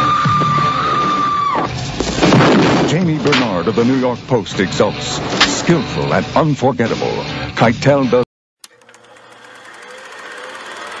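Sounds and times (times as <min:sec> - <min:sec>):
rapid mechanical clatter: 0:08.7 - 0:11.0.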